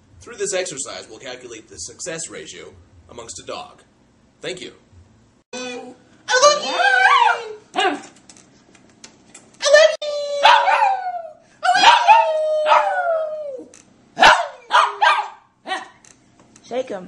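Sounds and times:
man yodeling: 5.6s - 7.6s, 9.6s - 13.7s
dog howling: 5.6s - 8.0s, 9.7s - 15.3s.

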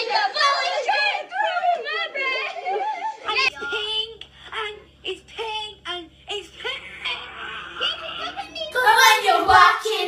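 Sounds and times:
girls singing: 0.0s - 3.3s, 8.3s - 10.0s
low steady hum: 3.2s - 10.0s.

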